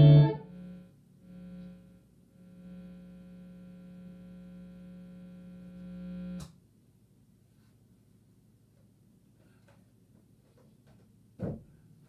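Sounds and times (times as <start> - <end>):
guitar amplifier hum: 0.0 - 6.6.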